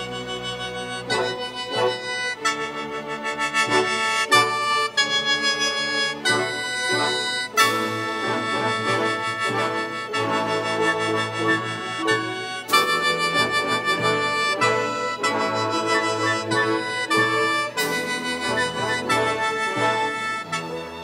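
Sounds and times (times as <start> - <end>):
mouth organ melody: 0.0 - 21.0
string orchestra: 0.0 - 21.0.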